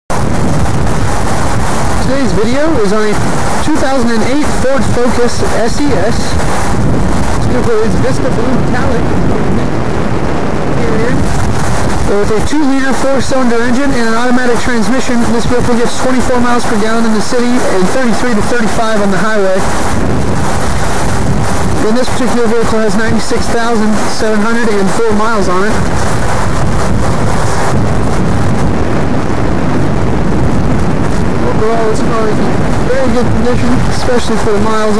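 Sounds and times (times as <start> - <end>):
wind rumble on microphone: 0.1 - 34.9.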